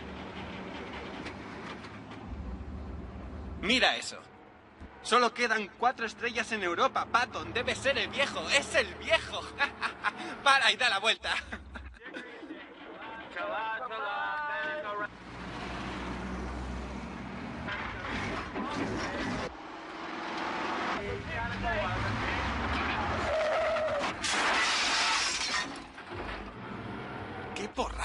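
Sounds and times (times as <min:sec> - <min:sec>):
vehicle engine: 0:00.0 - 0:12.0, 0:14.8 - 0:28.0
loud car crash: 0:17.6 - 0:19.6, 0:20.6 - 0:26.6
glass breaking: 0:24.2 - 0:26.1.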